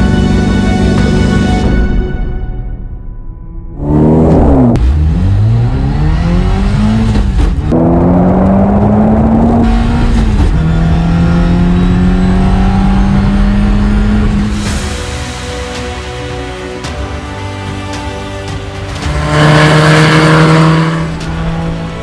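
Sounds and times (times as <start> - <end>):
engine accelerating with gear changes: 3.7 - 14.6, 19.0 - 22.0.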